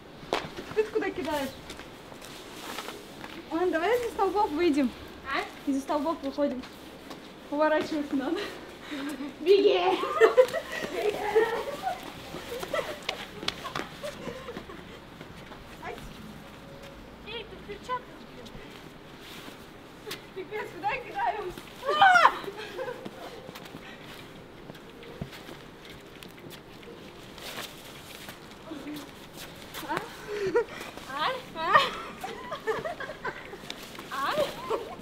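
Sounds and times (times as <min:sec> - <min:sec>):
women shouting and squealing: 0:09.4 - 0:13.0, 0:20.5 - 0:23.4, 0:34.1 - 0:35.0.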